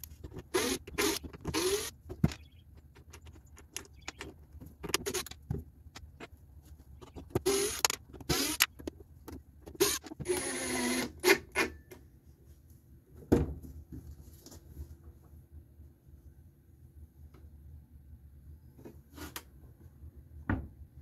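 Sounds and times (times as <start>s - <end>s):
cordless driver driving screws: 0.1s - 2.5s, 3.6s - 5.4s, 7.0s - 8.9s, 9.7s - 11.7s.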